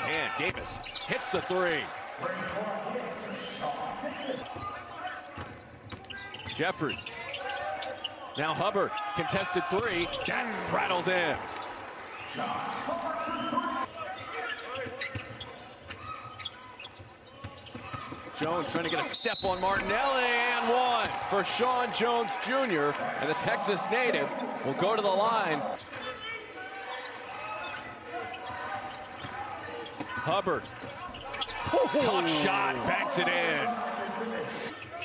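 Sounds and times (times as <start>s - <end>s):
sneaker squeaks: 0.0s - 1.2s, 4.0s - 9.1s, 13.8s - 19.8s, 25.7s - 31.9s, 34.7s - 35.0s
arena crowd murmur: 19.9s - 35.0s.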